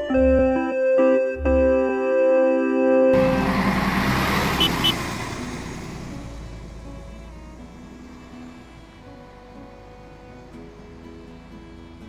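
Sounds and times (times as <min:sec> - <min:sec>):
bus engine and road noise: 0:03.1 - 0:12.0.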